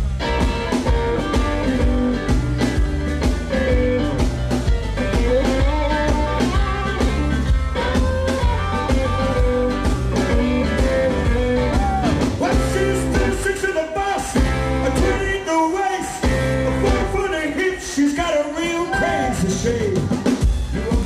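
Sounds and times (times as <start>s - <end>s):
electric blues band playing: 0.0s - 21.0s
electric guitar lead with bent notes: 0.0s - 21.0s.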